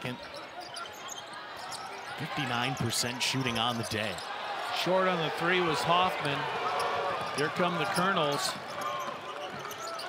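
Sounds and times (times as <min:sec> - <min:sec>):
arena crowd hubbub: 0:00.0 - 0:10.0.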